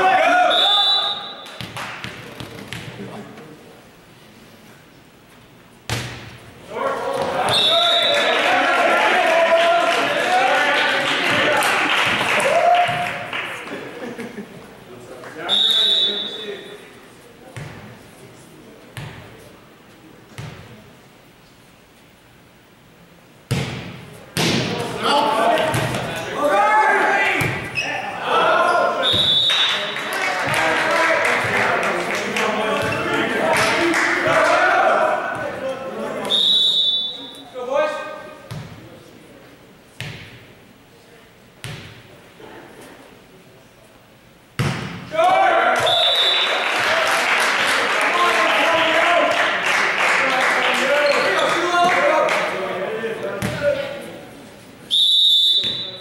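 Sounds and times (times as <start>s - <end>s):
players and spectators shouting: 0.0s - 1.3s, 6.7s - 13.2s, 25.0s - 31.9s, 32.5s - 36.4s, 45.1s - 47.1s, 47.9s - 49.4s
referee whistle blasts: 0.4s - 1.6s, 7.5s - 8.3s, 15.5s - 16.8s, 29.0s - 29.7s, 36.3s - 37.4s, 45.8s - 46.6s, 54.9s - 56.0s
volleyball hits echoing: 5.9s - 6.4s, 11.2s - 13.3s, 23.5s - 26.3s, 27.2s - 27.8s, 32.7s - 35.6s, 44.6s - 46.0s, 53.3s - 53.9s.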